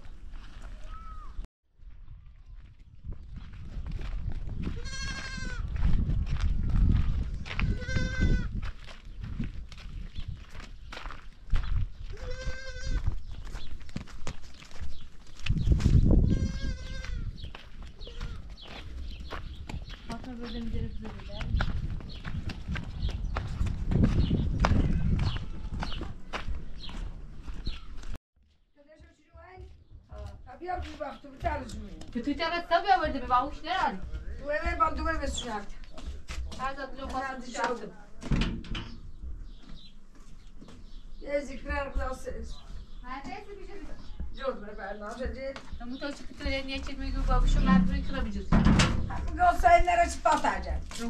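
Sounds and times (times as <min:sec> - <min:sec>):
goats bleating: 0:04.8 - 0:05.6, 0:07.6 - 0:08.5, 0:12.1 - 0:13.0, 0:16.3 - 0:17.3
low rumble: 0:46.8 - 0:49.8.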